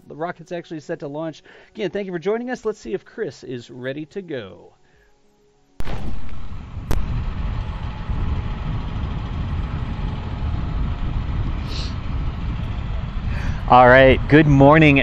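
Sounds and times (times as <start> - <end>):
wind rumble on microphone: 5.8 - 15.0.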